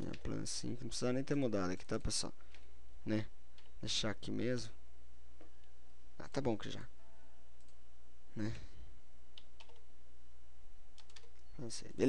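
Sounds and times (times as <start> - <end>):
steady low hum: 0.0 - 12.0
computer mouse clicks: 7.6 - 7.8, 11.0 - 11.5.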